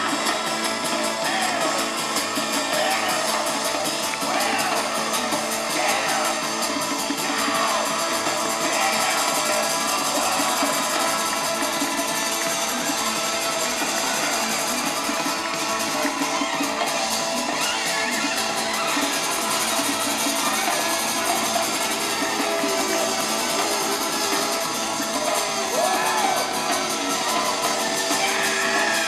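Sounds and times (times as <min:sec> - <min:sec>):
live band music: 0:00.0 - 0:29.0.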